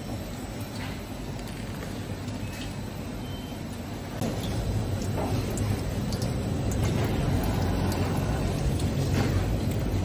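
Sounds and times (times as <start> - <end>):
bidet wash running: 0.0 - 10.0.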